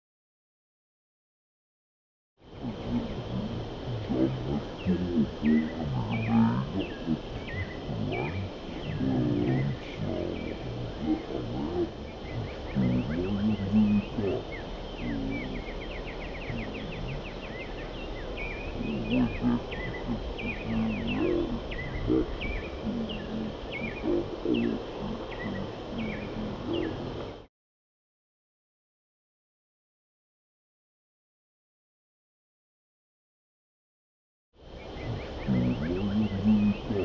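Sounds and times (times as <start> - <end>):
low wind rumble: 2.4 - 27.5
low voices talking: 2.5 - 15.7, 16.4 - 17.5, 18.6 - 27.4, 35.1 - 37.0
small birds chirping: 2.6 - 27.5, 34.7 - 37.0.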